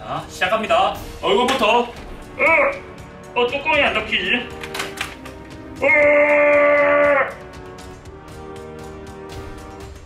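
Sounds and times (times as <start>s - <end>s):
background music with light beat: 0.0s - 10.0s.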